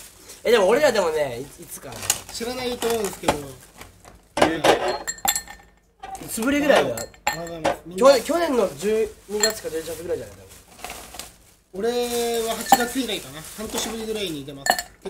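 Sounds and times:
glassware clinking on a table: 0:04.4 - 0:07.8, 0:09.4 - 0:09.6, 0:12.6 - 0:13.0, 0:14.6 - 0:15.0.

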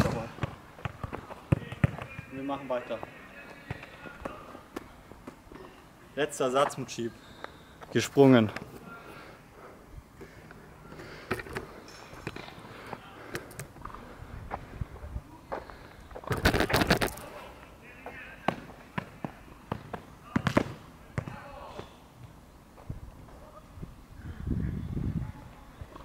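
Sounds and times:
rustling: 0:15.7 - 0:17.6.

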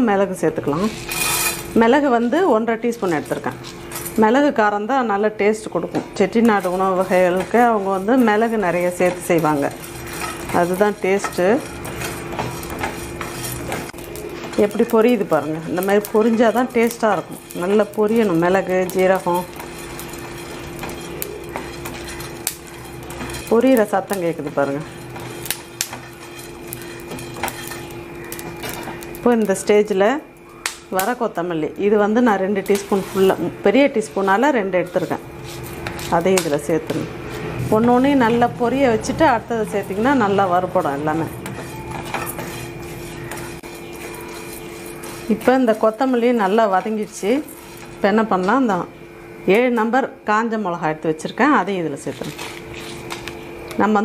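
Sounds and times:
spices crackling in a hot pan: 0:00.0 - 0:54.0.

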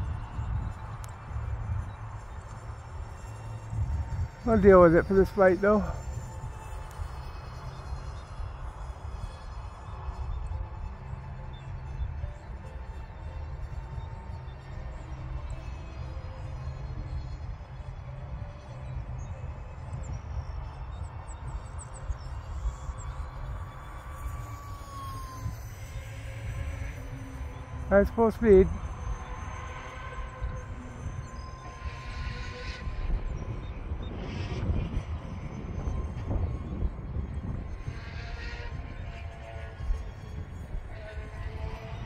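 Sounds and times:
distant electric jet whine: 0:00.0 - 0:42.0
wind buffeting microphone: 0:00.0 - 0:42.0.

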